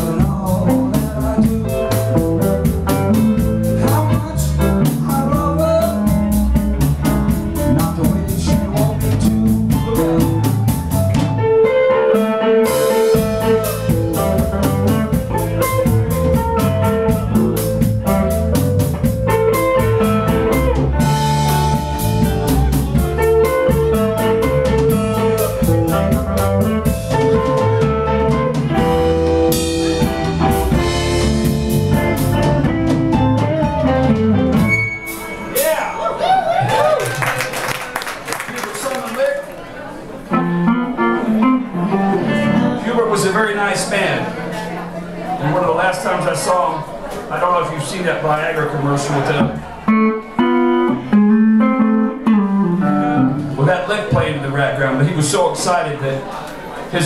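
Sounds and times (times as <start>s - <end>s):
drum kit steady beat: 0.0s - 36.0s
electric guitar: 0.0s - 36.0s, 40.1s - 45.6s, 49.2s - 54.2s.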